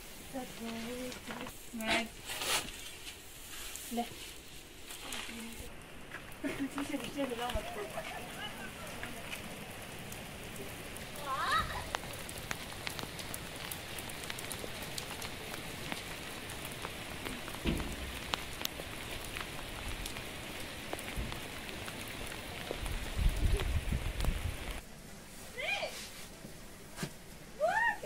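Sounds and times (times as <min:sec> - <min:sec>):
heavy rain on paved road: 0:03.8 - 0:28.0
low thump: 0:17.6 - 0:18.2.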